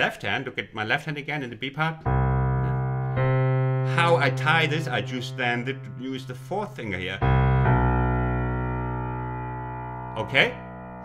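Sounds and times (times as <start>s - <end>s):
piano chord ringing: 2.0s - 11.0s.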